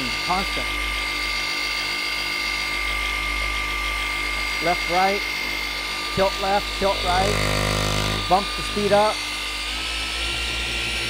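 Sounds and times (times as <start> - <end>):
polisher motor whining: 0.0 - 11.0.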